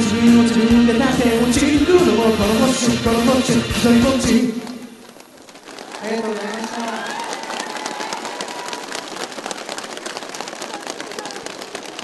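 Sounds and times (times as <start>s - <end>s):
audience applauding: 4.6s - 12.0s.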